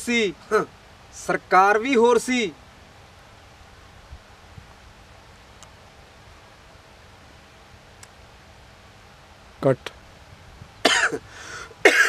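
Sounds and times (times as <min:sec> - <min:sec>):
man coughing: 0:10.8 - 0:12.0.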